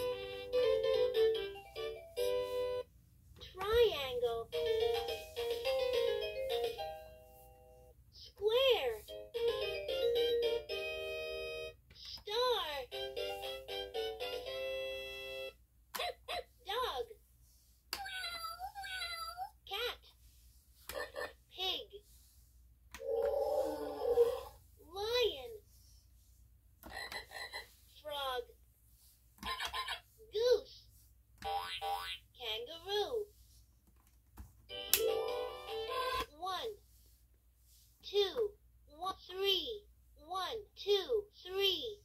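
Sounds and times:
high voice-like electronic sound: 0:23.0 - 0:24.6.

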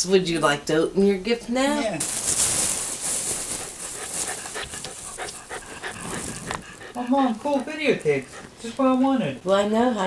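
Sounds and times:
plastic bag rustling: 0:01.8 - 0:07.0.

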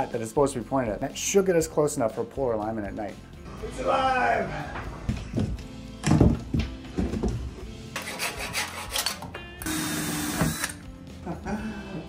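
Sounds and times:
background music: 0:00.0 - 0:12.0
woodworking knocks and scraping: 0:04.7 - 0:09.3
cordless drill running: 0:09.6 - 0:10.8.

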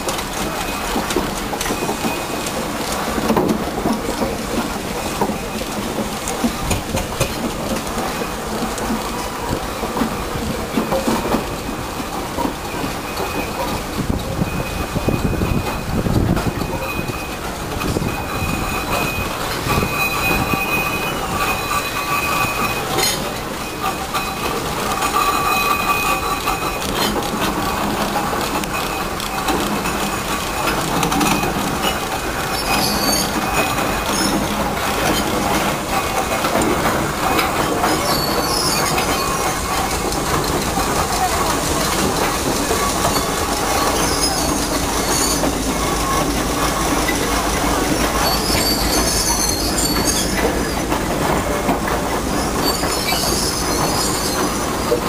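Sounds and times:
steam road rollers rumbling: 0:00.0 - 0:55.0.

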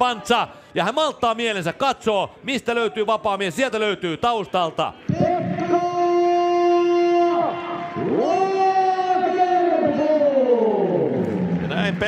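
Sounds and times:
man announcing over loudspeakers: 0:00.0 - 0:12.0.

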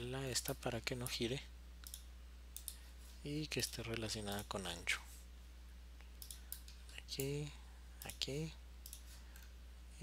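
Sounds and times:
low electrical hum: 0:00.0 - 0:10.0
faint computer mouse clicks: 0:01.8 - 0:02.8, 0:06.0 - 0:07.3.

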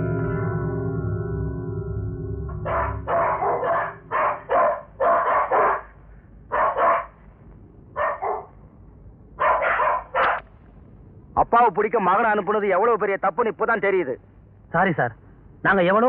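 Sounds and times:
dog barking: 0:02.6 - 0:07.2, 0:08.0 - 0:08.6, 0:09.4 - 0:10.4.

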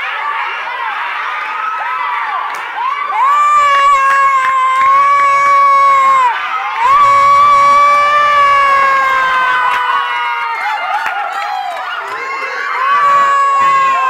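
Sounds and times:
children shouting and cheering: 0:00.0 - 0:14.0
high-pitched screams: 0:03.0 - 0:14.0.

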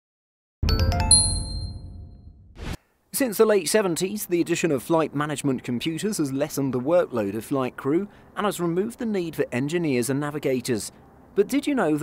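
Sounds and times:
bright chime notes: 0:00.6 - 0:02.4
low bass hit: 0:00.6 - 0:02.6.

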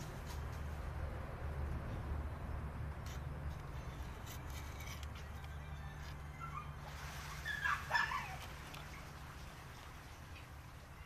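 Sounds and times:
high-pitched animal calls: 0:06.4 - 0:08.5.

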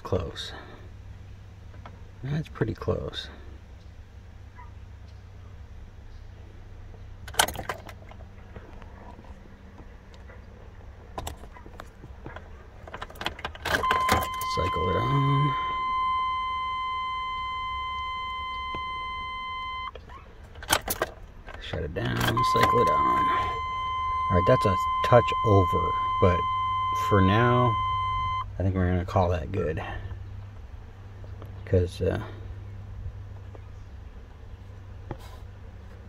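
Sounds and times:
ignition key clicks: 0:12.9 - 0:28.4
dashboard warning chime: 0:13.7 - 0:20.0, 0:22.0 - 0:28.5.

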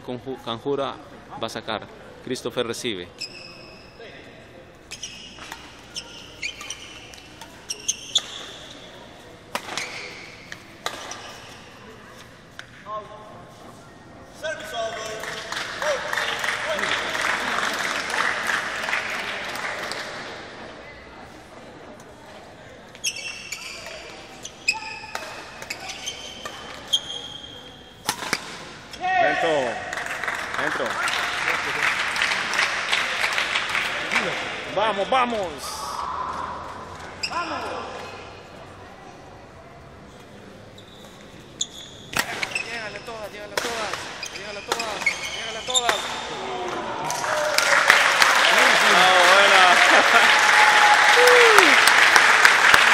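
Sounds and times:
shoes squeaking on court floor: 0:03.1 - 0:12.8, 0:22.9 - 0:28.4, 0:37.0 - 0:38.4, 0:40.1 - 0:46.4
racket hitting shuttlecock: 0:09.5 - 0:11.6, 0:24.8 - 0:26.8, 0:28.0 - 0:28.7, 0:43.6 - 0:45.1
crowd cheering and shouting: 0:46.4 - 0:51.9.

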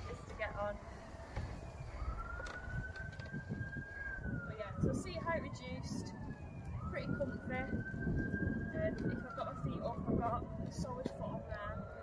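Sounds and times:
faint siren wailing: 0:00.0 - 0:12.0.

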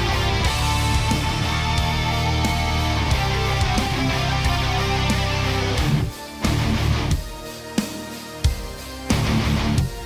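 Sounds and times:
rock band music: 0:00.0 - 0:10.0.

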